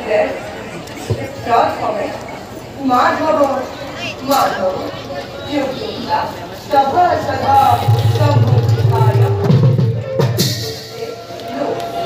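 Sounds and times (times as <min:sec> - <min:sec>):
hand drum strokes: 0:07.6 - 0:12.0.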